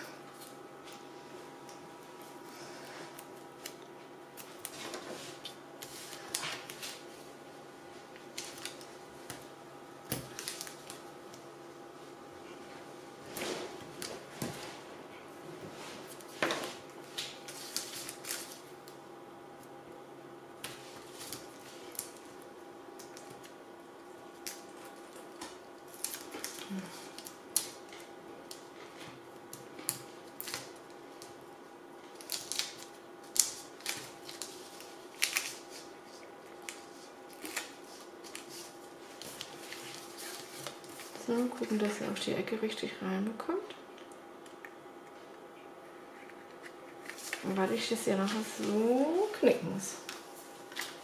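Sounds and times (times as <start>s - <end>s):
faint steady hum: 0.0s - 51.0s
cardstock and tape rustling: 8.1s - 11.4s, 16.0s - 19.0s, 32.1s - 42.1s, 46.1s - 51.0s.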